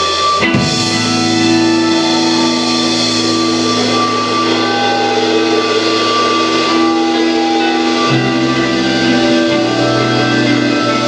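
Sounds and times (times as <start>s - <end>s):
rock band playing held chords: 0.0s - 11.0s.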